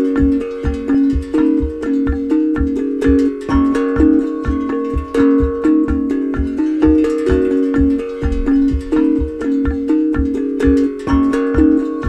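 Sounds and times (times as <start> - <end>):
quick steady low beat: 0.0 - 12.0
steel tongue drum notes: 0.0 - 12.0.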